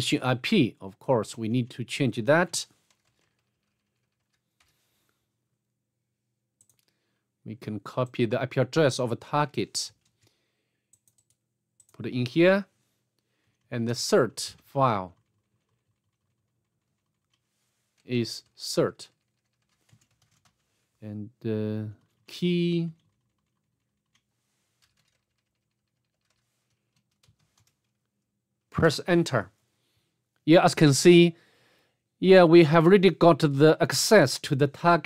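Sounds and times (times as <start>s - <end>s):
computer keyboard keystrokes: 10.9s - 12.0s, 23.0s - 27.9s.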